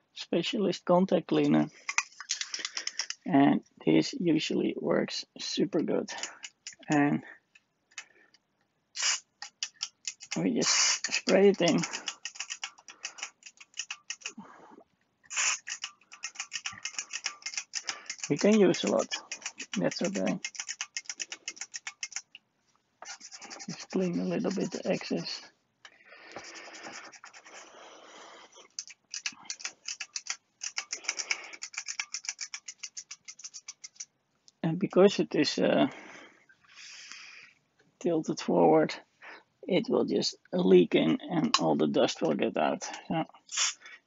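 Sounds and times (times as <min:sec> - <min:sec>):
rapid irregular ticking: 0:01.6 - 0:03.3, 0:06.0 - 0:07.1, 0:09.0 - 0:14.4, 0:15.3 - 0:22.4, 0:23.0 - 0:25.5, 0:26.3 - 0:34.1
tissue rubbing circuit board: 0:09.0 - 0:14.4, 0:15.3 - 0:22.3, 0:23.0 - 0:25.5, 0:26.3 - 0:27.7, 0:28.6 - 0:34.1
aerosol can spraying hiss: 0:10.7 - 0:11.2, 0:15.3 - 0:15.7.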